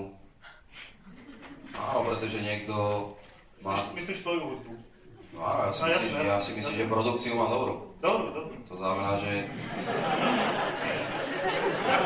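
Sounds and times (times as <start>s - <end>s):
audience chattering: 8.2s - 12.0s.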